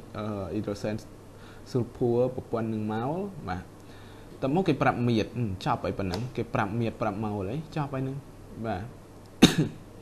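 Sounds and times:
person speaking: 0:00.0 - 0:09.0
sharp cough: 0:09.4 - 0:09.8.

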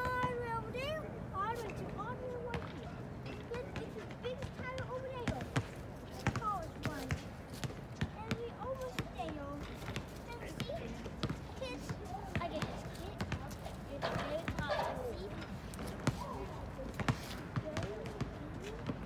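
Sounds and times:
people talking: 0:00.0 - 0:05.5, 0:11.6 - 0:15.4
basketballs bouncing on hard court: 0:03.8 - 0:16.3, 0:16.9 - 0:19.0.

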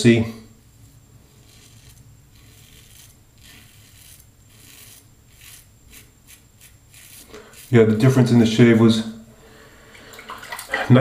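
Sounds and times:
razor scraping beard stubble: 0:01.4 - 0:07.9.

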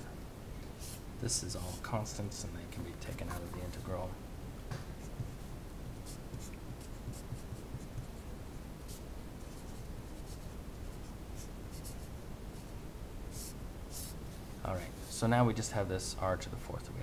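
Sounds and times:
steady low hum: 0:00.0 - 0:17.0
marker writing on paper: 0:05.0 - 0:08.2, 0:08.9 - 0:12.7, 0:13.3 - 0:14.2.

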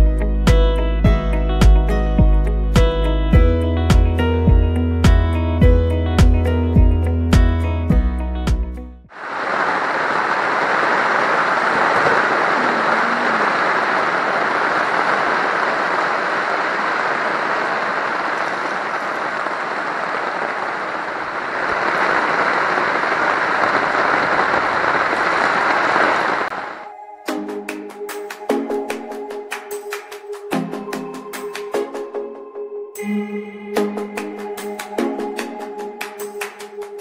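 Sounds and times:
background music: 0:00.0 - 0:09.1, 0:26.8 - 0:37.0
heavy rain: 0:09.1 - 0:26.9.

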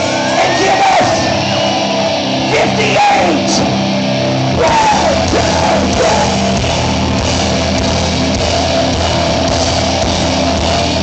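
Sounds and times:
live punk rock band playing: 0:00.0 - 0:11.0.

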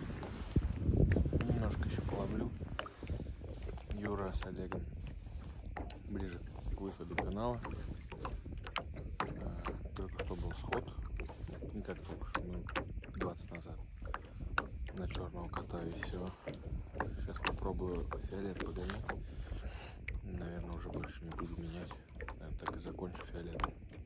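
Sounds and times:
waves lapping against metal hull: 0:00.0 - 0:24.0
wind rumbling on microphone: 0:00.0 - 0:24.0.

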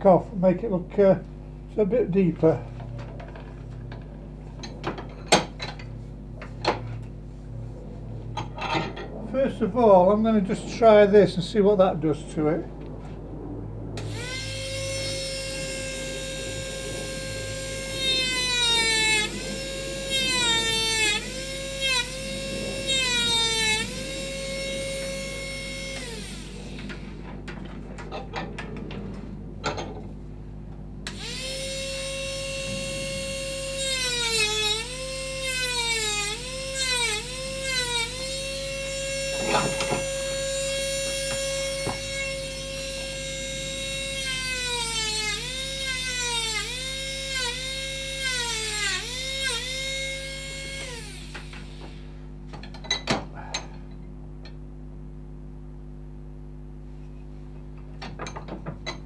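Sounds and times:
rotary carving tool grinding wood: 0:14.0 - 0:27.2, 0:31.1 - 0:52.0.

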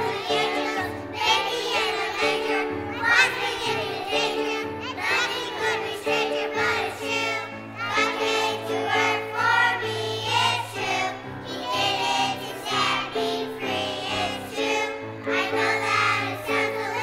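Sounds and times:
children's choir singing: 0:00.0 - 0:17.0
musical accompaniment: 0:00.0 - 0:17.0.

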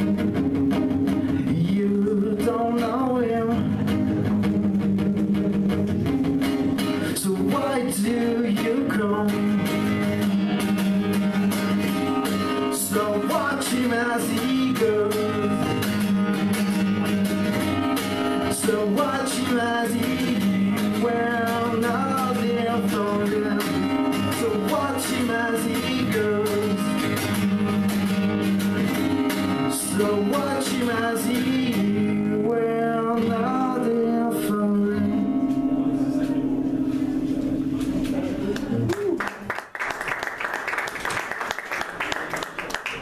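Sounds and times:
acoustic guitar strumming: 0:00.0 - 0:38.6
man singing: 0:01.3 - 0:05.6, 0:06.8 - 0:10.3, 0:12.6 - 0:16.4, 0:18.4 - 0:27.9, 0:29.6 - 0:36.4.

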